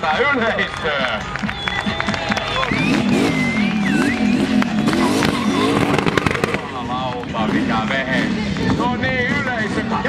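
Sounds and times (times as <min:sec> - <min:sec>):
car engine revving hard: 0:02.6 - 0:09.8.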